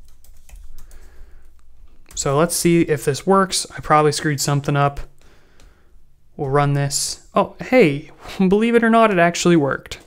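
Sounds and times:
computer keyboard typing: 0.0s - 1.6s.

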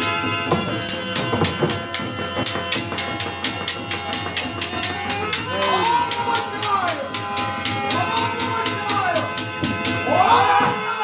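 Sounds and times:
hand-played barrel drum: 0.0s - 11.0s
harmonium holding steady notes: 0.0s - 11.0s.

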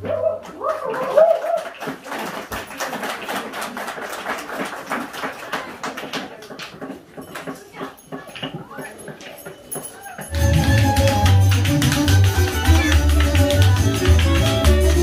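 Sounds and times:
crowd voices: 0.0s - 15.0s.

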